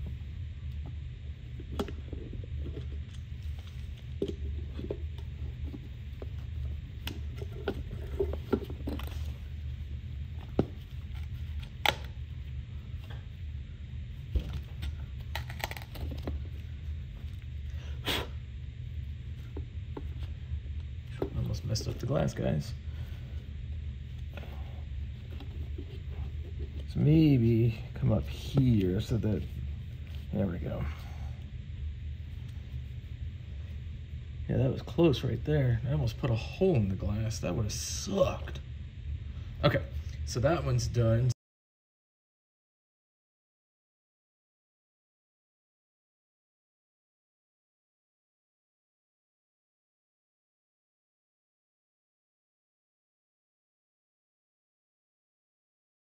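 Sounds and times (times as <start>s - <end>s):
low background rumble: 0.0s - 41.4s
steady low hum: 0.0s - 41.4s.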